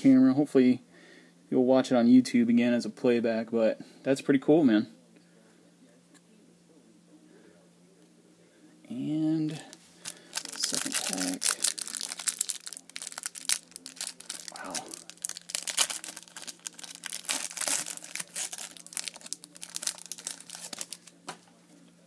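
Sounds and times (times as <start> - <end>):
faint low hum: 0.0 - 22.0
plastic wrapper crinkling: 9.7 - 21.3.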